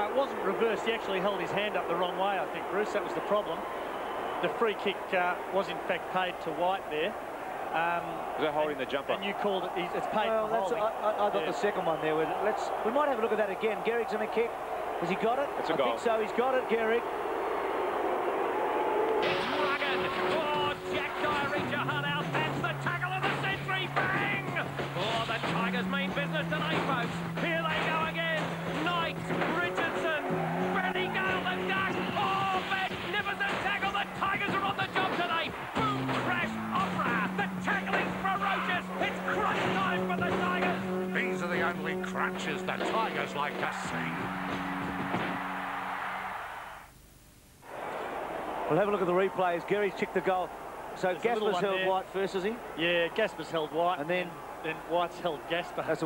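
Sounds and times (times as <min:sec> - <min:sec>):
stadium crowd cheering: 0:00.0 - 0:47.0, 0:47.6 - 0:56.0
music with voices: 0:19.2 - 0:45.4.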